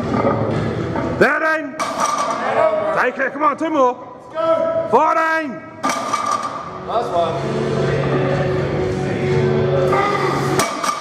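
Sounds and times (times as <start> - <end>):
background music: 0.0 - 11.0
metal barbell clank: 10.6 - 11.0.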